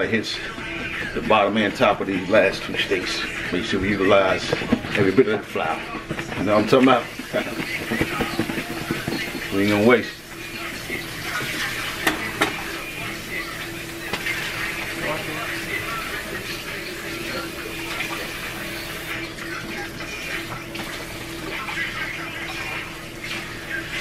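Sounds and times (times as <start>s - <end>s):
steaks sizzling in hot oil: 0.0s - 24.0s.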